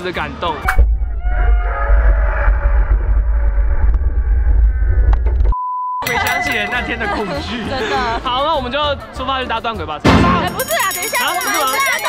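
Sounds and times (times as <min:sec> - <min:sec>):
wind rumble on microphone: 0:00.7 - 0:05.5.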